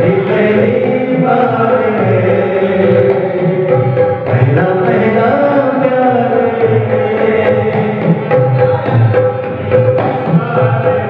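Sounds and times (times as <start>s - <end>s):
dholak drumming: 0.0s - 11.0s
man singing long held notes: 0.0s - 11.0s.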